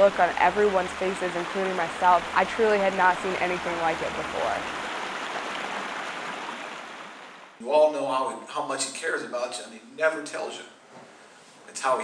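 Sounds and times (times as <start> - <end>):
rushing floodwater: 0.0 - 7.6.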